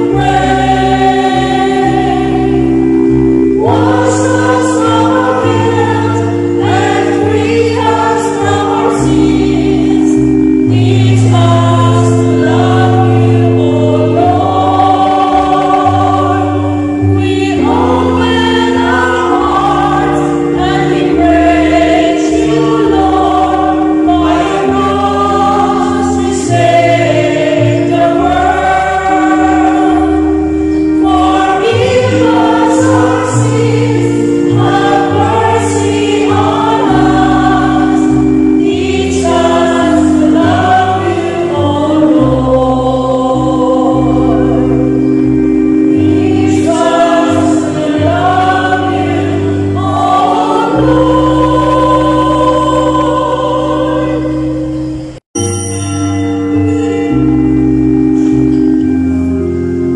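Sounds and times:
moving bass line: 0.0 - 55.2
choir singing a hymn: 0.0 - 59.9
sustained accompaniment chords: 0.0 - 59.9.

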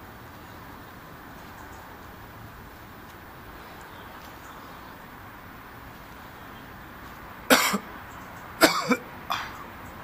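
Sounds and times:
man coughing: 7.5 - 7.8, 8.6 - 9.5.

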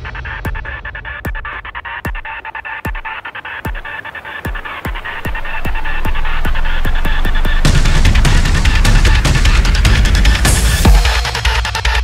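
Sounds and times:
percussion hits: 0.0 - 12.0
kick drum: 0.4 - 3.9, 7.7 - 11.4
bass rumble: 5.2 - 11.2.

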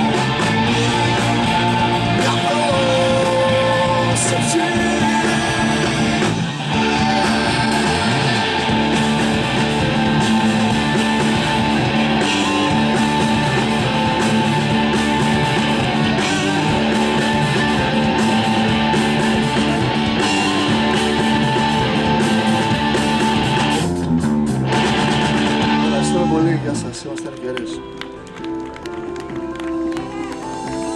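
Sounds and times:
rock band playing instrumental: 0.0 - 30.9.

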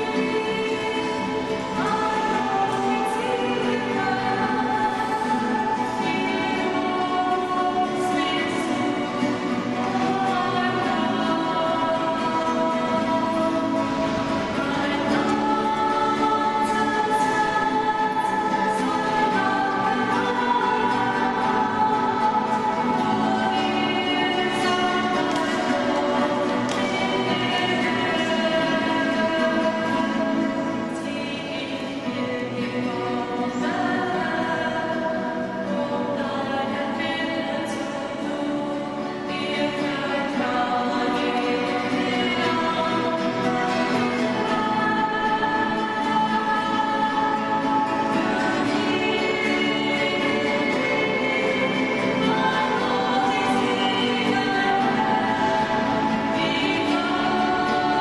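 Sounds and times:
group singing worship song: 0.0 - 58.0
strummed acoustic guitars: 0.0 - 58.0.

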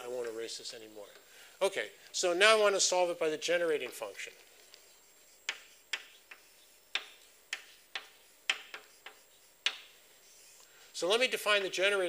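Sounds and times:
chalk tapping on a blackboard: 3.8 - 10.7.

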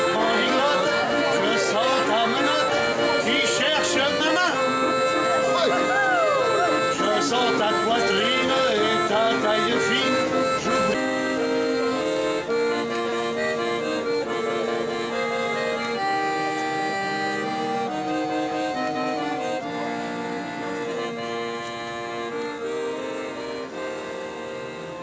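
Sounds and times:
accordion music: 0.0 - 25.0.

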